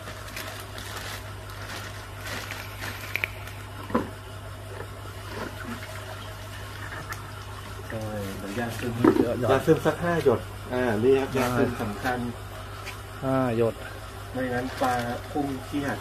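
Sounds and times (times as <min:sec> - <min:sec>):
plastic crinkling: 0:00.0 - 0:04.1, 0:14.5 - 0:16.0
water sloshing in plastic bag: 0:00.0 - 0:04.2, 0:04.8 - 0:10.4, 0:14.4 - 0:16.0.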